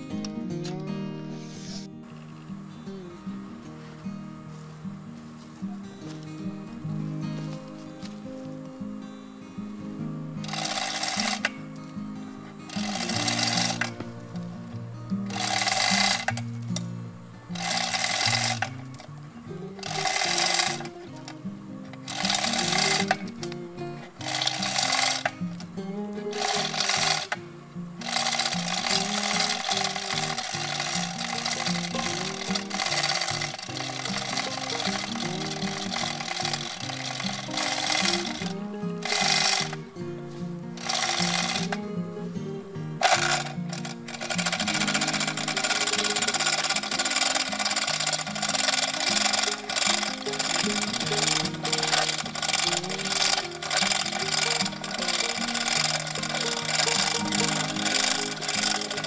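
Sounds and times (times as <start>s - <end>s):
background music with melody: 0.0s - 59.0s
hoist chain rattling: 10.4s - 11.6s, 12.7s - 14.0s, 15.3s - 16.4s, 17.6s - 19.1s, 19.8s - 21.3s, 22.1s - 23.4s, 24.2s - 25.7s, 26.3s - 27.4s, 28.0s - 39.8s, 40.8s - 41.8s, 43.0s - 59.0s.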